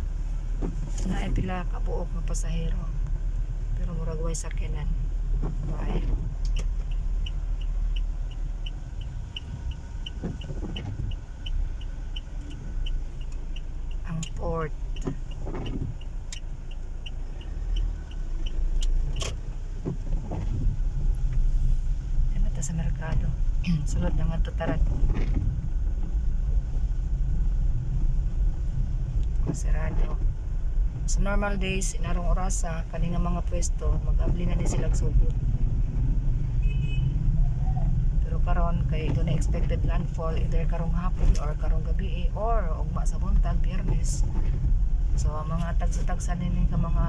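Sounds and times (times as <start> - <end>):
car engine rumble: 0.0 - 47.0
tyres on a wet road: 0.0 - 47.0
car indicator ticking: 6.3 - 20.1.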